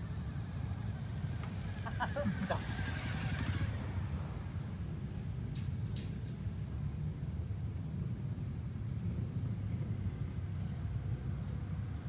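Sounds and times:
motorcycle passing by: 0:00.0 - 0:04.9.

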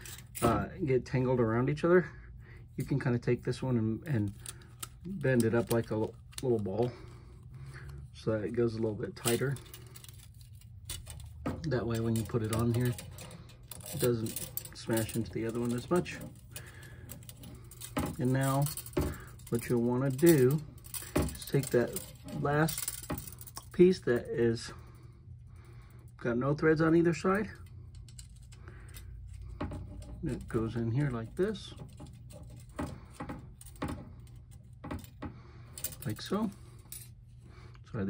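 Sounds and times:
metal wind spinner clicks and rubs: 0:00.0 - 0:00.7, 0:02.8 - 0:24.4
steady low hum: 0:00.0 - 0:38.0.

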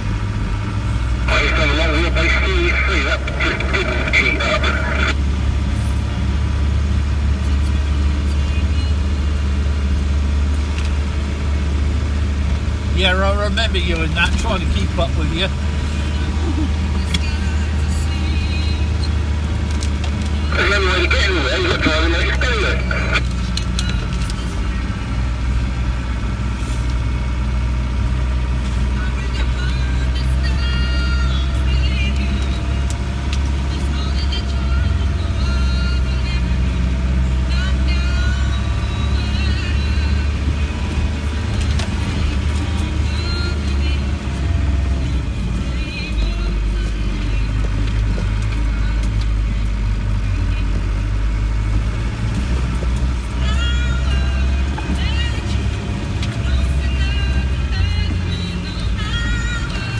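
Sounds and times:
road rumble on dirt lane: 0:00.0 - 0:59.9
vehicle engine drone from cab: 0:00.0 - 0:59.9.

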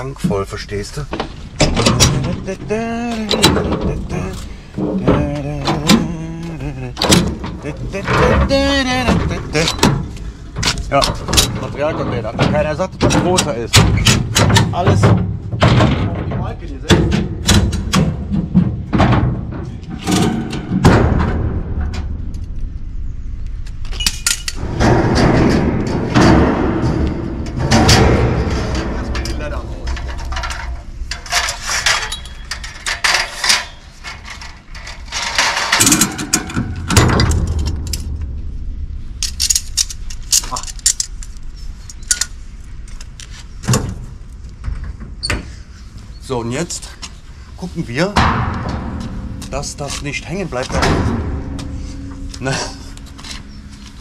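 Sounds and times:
metal knocks and clanks: 0:00.0 - 0:54.0
steady low rumble: 0:00.0 - 0:54.0.

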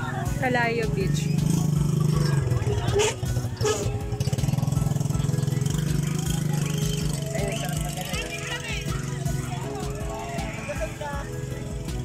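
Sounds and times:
engine idling: 0:00.0 - 0:12.0.

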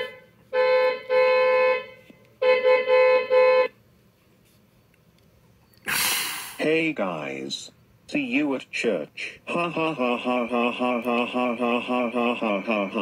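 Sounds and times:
vehicle horn honking: 0:00.0 - 0:03.8.

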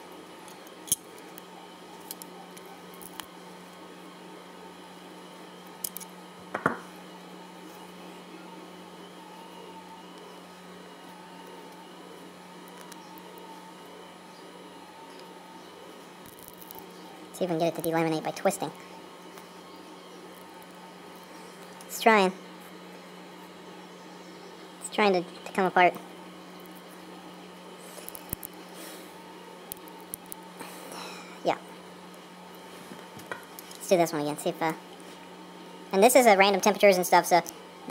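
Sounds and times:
steady low hum: 0:00.0 - 0:37.9
plastic gear clicking and crackling: 0:16.2 - 0:16.8, 0:28.0 - 0:28.6.

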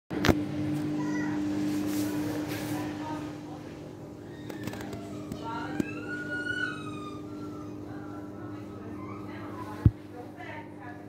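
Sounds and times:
washing machine spinning: 0:00.1 - 0:11.0.

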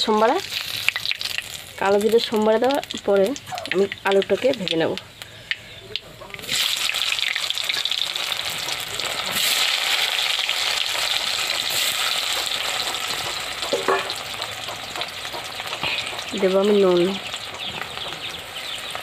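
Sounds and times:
potato sizzling in hot oil: 0:00.0 - 0:19.0.

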